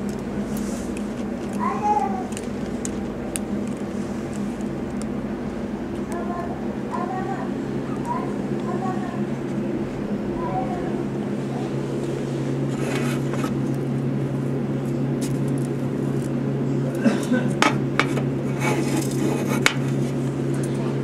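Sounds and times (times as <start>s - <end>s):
low background hum: 0.0s - 21.0s.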